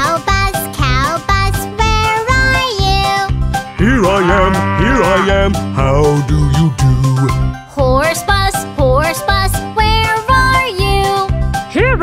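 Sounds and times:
children's song backing track: 0.0 - 12.0
cartoon cow mooing: 3.6 - 7.2.

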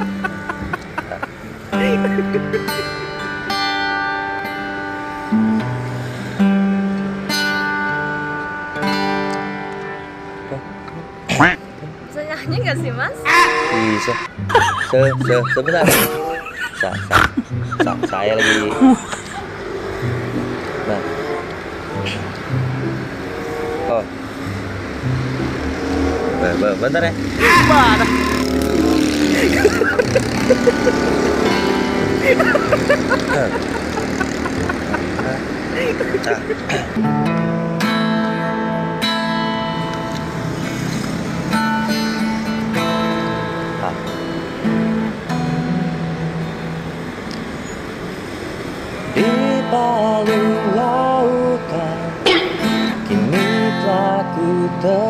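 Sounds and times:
acoustic guitar played softly: 0.0 - 55.0.

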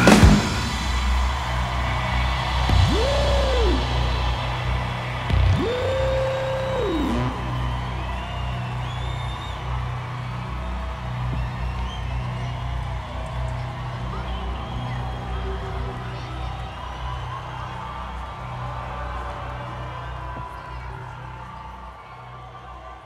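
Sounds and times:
crowd cheering: 0.0 - 23.0
gliding whoops: 1.3 - 23.0.

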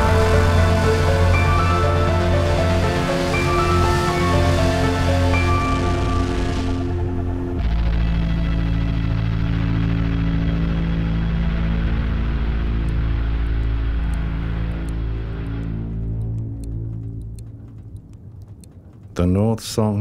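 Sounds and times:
dark ambient drone music: 0.0 - 20.0.

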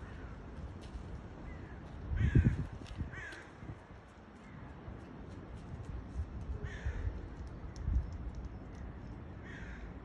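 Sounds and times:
crow cawing: 1.6 - 3.6, 6.6 - 7.2, 9.4 - 10.0.

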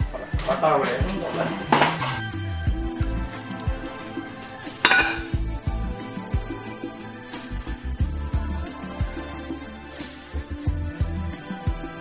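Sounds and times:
music with heavy low beat: 2.0 - 6.7
frying pan clanging on hob: 4.8 - 5.4.

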